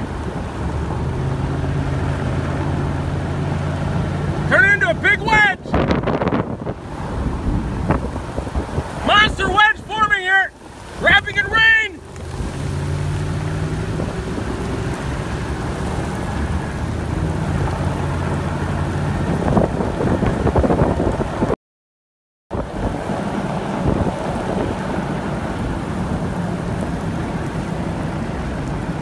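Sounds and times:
strong storm wind: 0.0s - 21.6s, 22.5s - 29.0s
excited high-pitched shouting: 9.0s - 12.0s.

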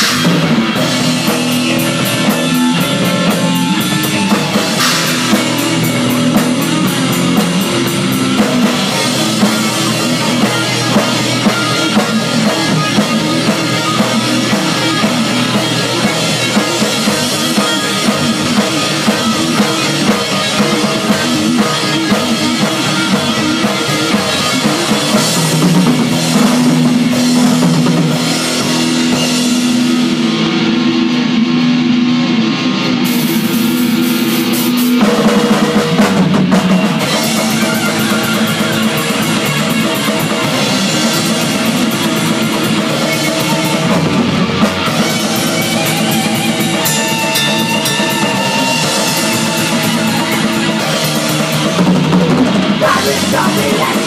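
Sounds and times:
pounding bass drum: 0.0s - 32.2s, 32.9s - 54.0s
distorted electric guitars: 0.0s - 54.0s
thrash metal band playing live: 0.0s - 54.0s.

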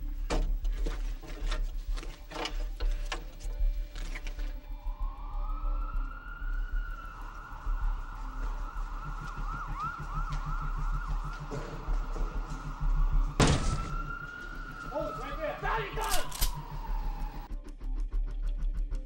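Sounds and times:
police sirens wailing: 4.6s - 17.5s.

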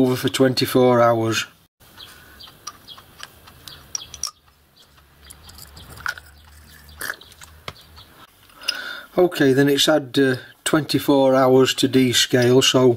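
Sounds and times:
small clicks and clinks: 2.5s - 7.6s.

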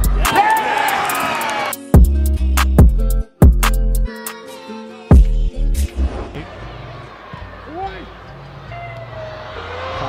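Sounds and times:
backing music bass line: 0.0s - 1.0s, 1.8s - 4.1s, 5.1s - 6.0s
shouted voices: 0.0s - 1.8s
stadium crowd noise: 0.0s - 1.8s, 5.9s - 10.0s.

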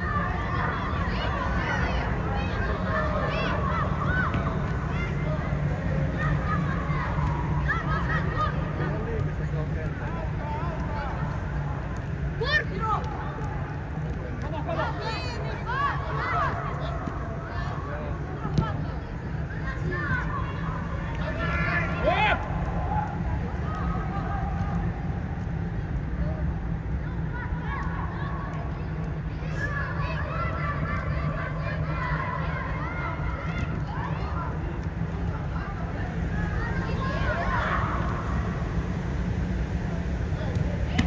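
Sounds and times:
players shouting: 0.0s - 9.1s, 14.6s - 25.2s, 29.5s - 41.0s
steady low hum: 0.0s - 41.0s
ball kick: 40.5s - 41.0s.

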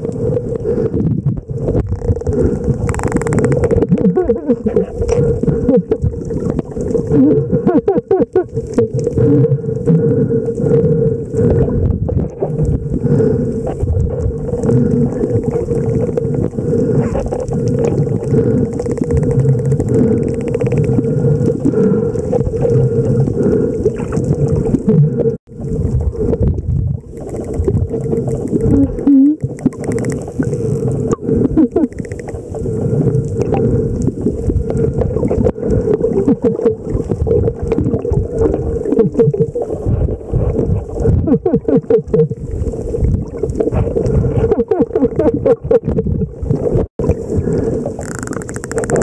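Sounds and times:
underwater rush of water: 0.0s - 49.0s
dolphin clicks and calls: 2.0s - 4.7s, 17.4s - 21.2s, 27.1s - 30.8s, 31.6s - 32.4s, 48.0s - 49.0s.

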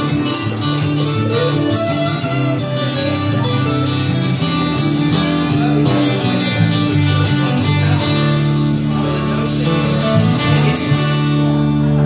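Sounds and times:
acoustic guitars strumming chords: 0.0s - 12.0s.

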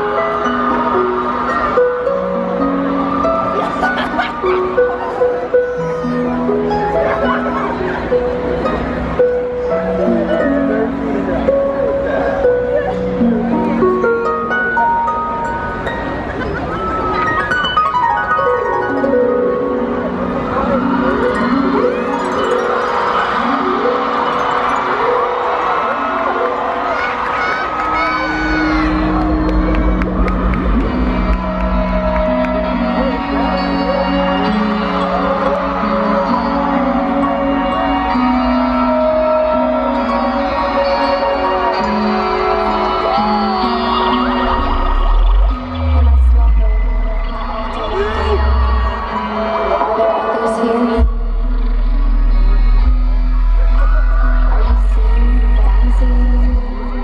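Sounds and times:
held synth notes: 0.0s - 57.0s
live music through pa: 0.0s - 57.0s
deep bass swells: 28.6s - 33.4s, 44.3s - 49.1s.

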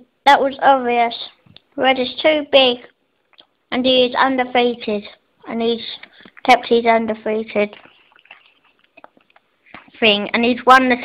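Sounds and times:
soft breath: 6.0s - 6.4s.

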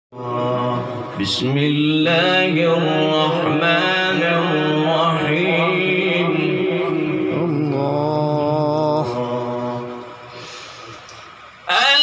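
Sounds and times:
man chanting melodically: 0.1s - 10.3s, 11.6s - 12.0s.

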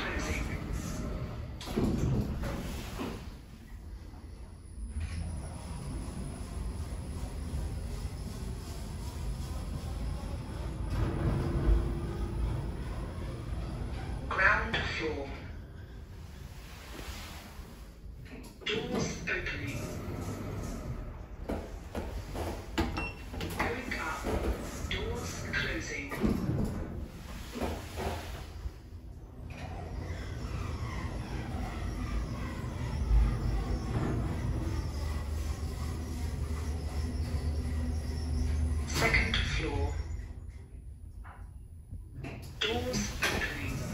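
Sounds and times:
lift car rumbling: 0.0s - 40.7s, 42.2s - 43.9s.

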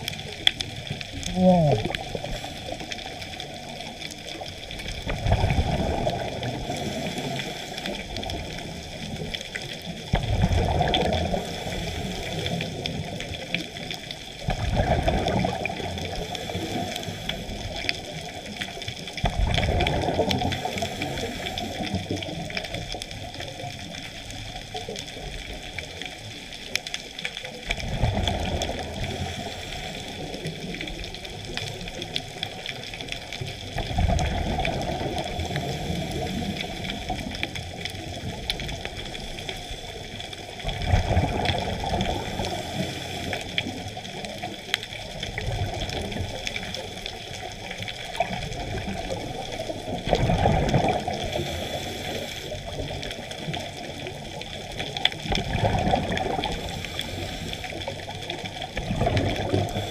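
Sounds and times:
regulator bubbling exhalations: 1.0s - 3.8s, 14.4s - 18.2s, 19.3s - 22.6s, 49.8s - 52.7s, 55.2s - 58.1s.

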